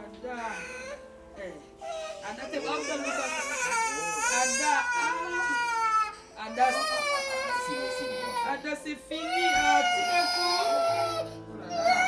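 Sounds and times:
small child crying: 0:01.8 - 0:08.6, 0:09.2 - 0:12.0.

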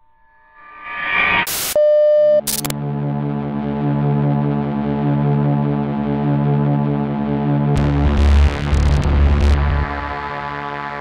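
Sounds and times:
rising swell effect: 0:00.2 - 0:01.8
steady electronic beep: 0:00.4 - 0:02.7
burst of static: 0:00.8 - 0:01.8, 0:02.4 - 0:02.7, 0:07.8 - 0:11.0
low droning synthesizer chord: 0:02.7 - 0:11.0.

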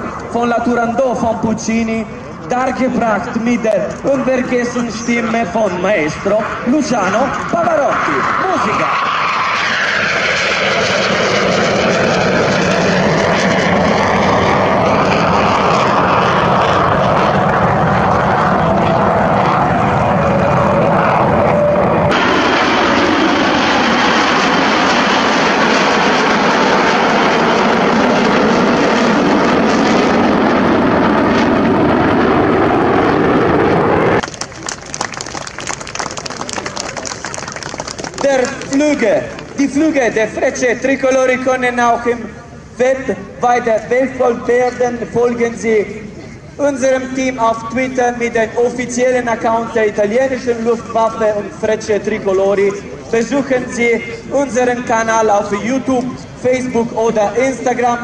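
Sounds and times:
jet aircraft flying by: 0:00.0 - 0:58.0.

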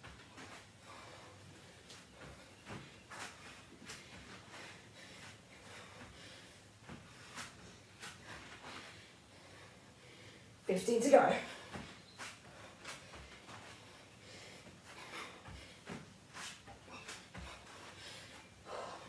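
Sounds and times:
person breathing: 0:00.6 - 0:10.6, 0:11.5 - 0:19.0.

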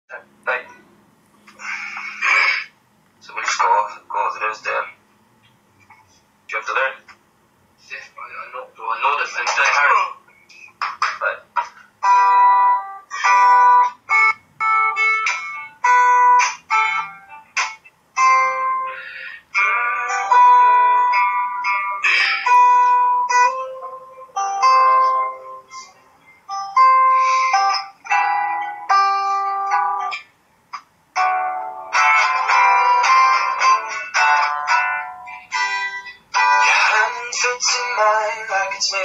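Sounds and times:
acoustic guitar picked chords: 0:11.0 - 0:39.0.

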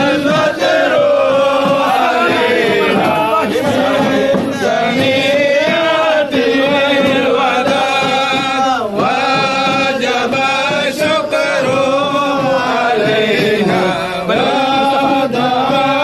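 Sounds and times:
men chanting in unison: 0:00.0 - 0:16.0.

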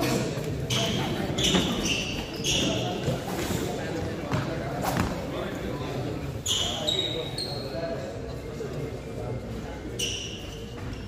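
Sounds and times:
chatter of voices: 0:00.0 - 0:11.0
shoes squeaking on court: 0:00.1 - 0:07.9, 0:09.9 - 0:11.0.

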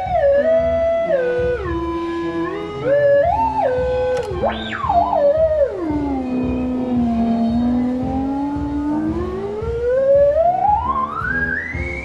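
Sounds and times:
electronic tone sweeping in pitch: 0:00.0 - 0:12.0.

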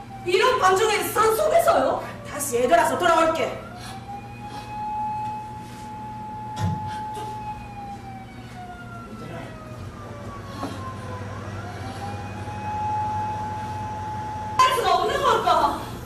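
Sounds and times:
low steady hum: 0:00.0 - 0:16.0
sustained siren-like tone: 0:00.0 - 0:16.0.

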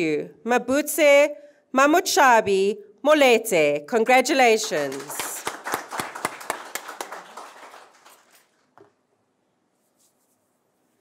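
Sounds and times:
audience applause: 0:04.8 - 0:08.6.

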